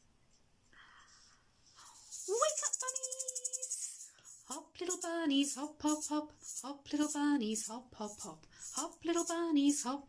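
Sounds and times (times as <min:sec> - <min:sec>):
jingling hand percussion: 0:02.1 - 0:09.9
woman singing: 0:04.6 - 0:10.0.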